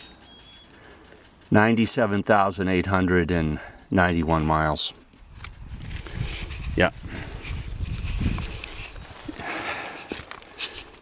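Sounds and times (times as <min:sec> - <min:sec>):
camera handling noise: 0:05.1 - 0:06.6
wind rumble on microphone: 0:05.2 - 0:09.6
footsteps: 0:05.2 - 0:11.0.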